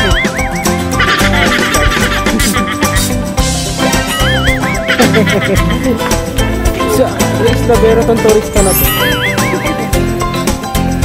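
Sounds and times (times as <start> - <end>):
guitar music with steady beat: 0.0 - 11.0
warbling wavering tone: 8.6 - 10.0.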